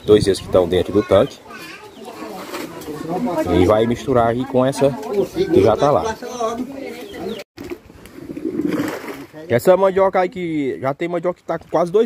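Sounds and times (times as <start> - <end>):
roots splashing into water: 7.6 - 9.4.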